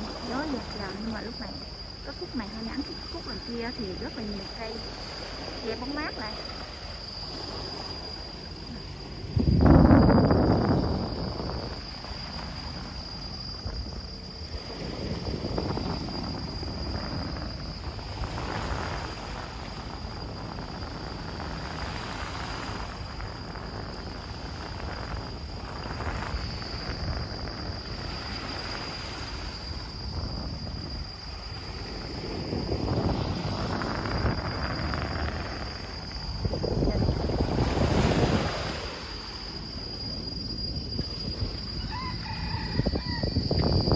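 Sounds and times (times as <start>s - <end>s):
insects droning: 0.0s - 43.9s
wind buffeting microphone: 0.0s - 43.9s.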